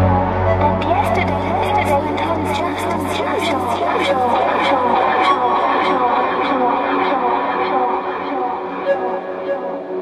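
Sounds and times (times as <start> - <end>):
chill-out electronic music: 0.0 - 10.0.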